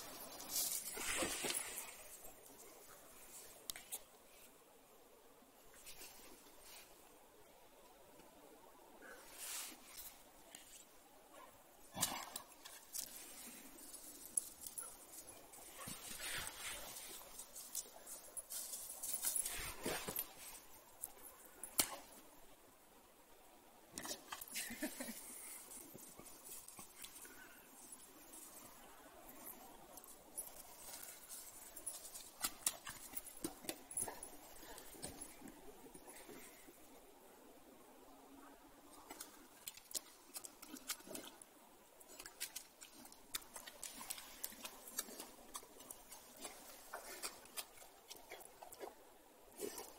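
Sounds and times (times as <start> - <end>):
rustling through undergrowth: 0.0 - 4.1, 12.1 - 22.2.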